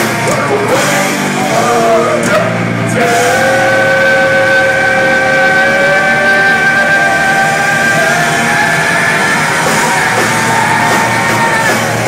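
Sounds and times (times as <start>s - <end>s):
live heavy metal band: 0.0s - 12.0s.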